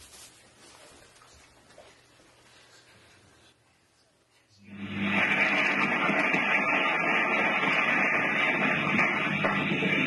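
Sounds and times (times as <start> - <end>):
old recording hiss and crackle: 0.0 - 4.5
low hum: 4.6 - 10.0.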